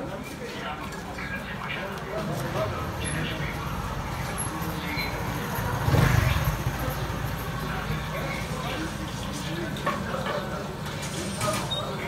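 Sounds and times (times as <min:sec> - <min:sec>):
motorcycle engine running: 0:05.2 - 0:08.9.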